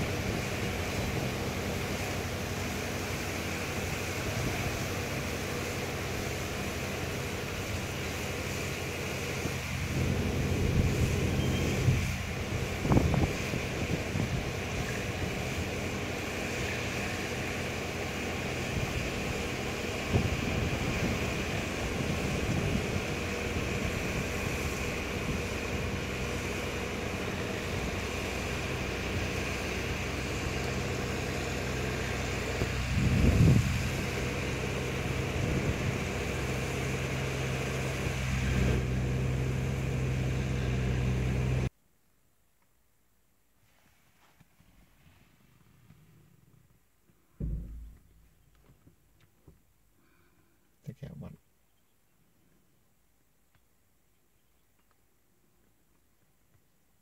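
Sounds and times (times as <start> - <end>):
outdoor hiss: 0.0 - 51.2
steady low hum: 47.2 - 48.8
dull bumps on microphone: 47.4 - 48.4.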